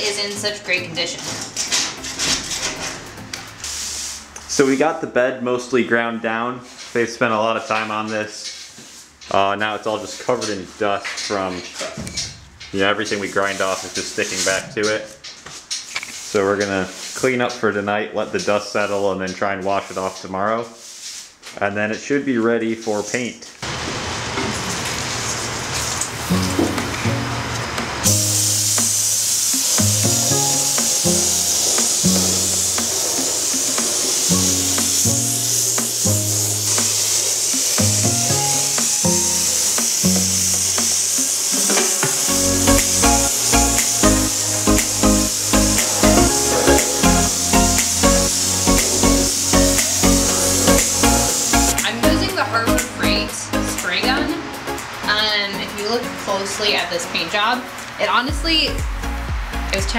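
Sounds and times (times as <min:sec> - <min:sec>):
spray gun hissing: 0:03.6 - 0:04.4, 0:13.1 - 0:14.7, 0:28.0 - 0:56.9
background music with bass line: 0:29.8 - 0:37.0, 0:37.8 - 0:40.9, 0:42.0 - 0:56.3, 0:58.3 - 0:59.9.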